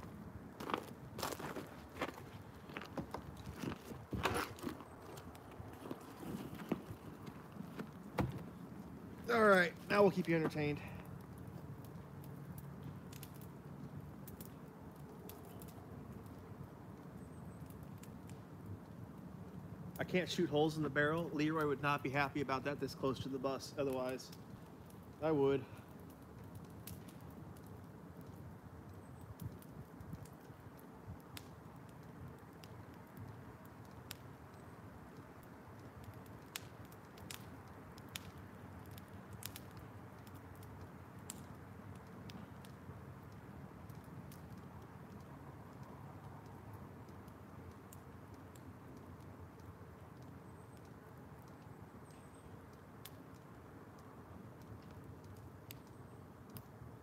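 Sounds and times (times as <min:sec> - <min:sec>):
faint steady fire rush: 0:00.0 - 0:57.0
wood fire popping and crackling: 0:00.0 - 0:57.0.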